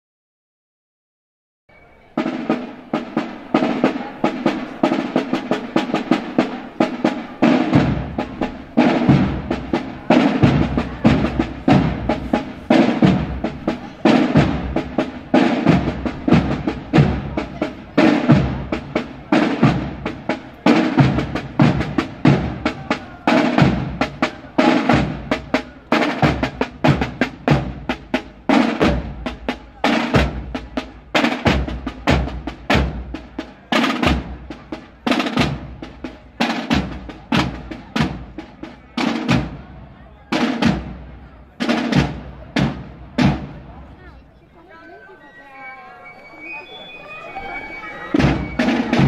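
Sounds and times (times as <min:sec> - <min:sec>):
deep drum strokes: 0:02.2 - 0:44.0, 0:48.1 - 0:49.0
side drums marching beat: 0:02.2 - 0:44.1, 0:47.4 - 0:49.0.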